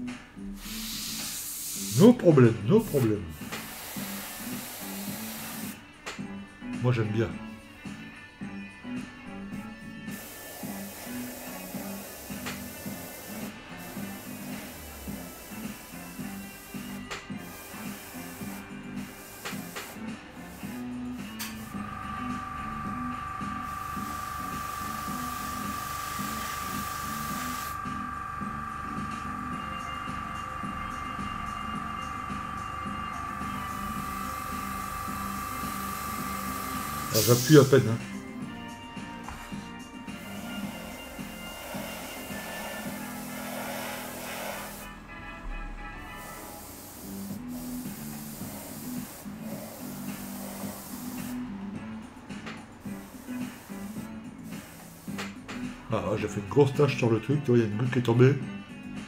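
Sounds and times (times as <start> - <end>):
background music: 0.0 - 59.0
airbrush hissing and whistling: 0.4 - 5.8, 9.9 - 38.0, 40.1 - 44.9, 46.1 - 51.4, 52.8 - 55.4.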